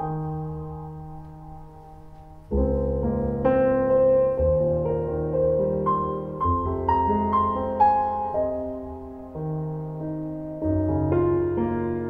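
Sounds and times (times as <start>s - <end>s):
piano music over loudspeakers: 0.0s - 12.0s.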